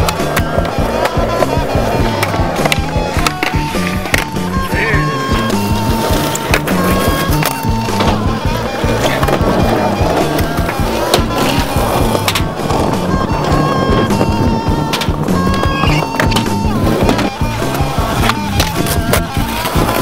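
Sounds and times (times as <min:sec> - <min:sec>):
background music: 0:00.0 - 0:20.0
skateboard knocks: 0:00.0 - 0:20.0
skateboard wheels rolling on concrete: 0:00.0 - 0:20.0.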